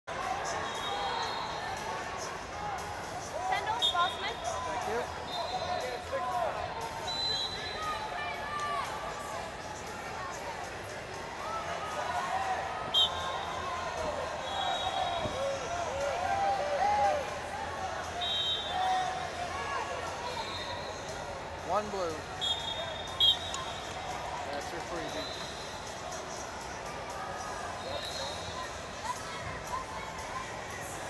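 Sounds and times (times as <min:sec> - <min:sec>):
high whistle blasts: 0:07.0 - 0:08.0, 0:12.9 - 0:13.4, 0:14.4 - 0:15.4, 0:18.2 - 0:18.8, 0:22.4 - 0:23.8.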